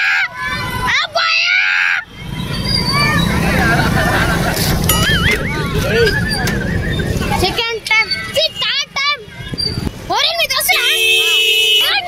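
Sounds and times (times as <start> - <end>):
voices calling out: 0.0 - 12.0
motorbikes rumbling: 0.3 - 12.0.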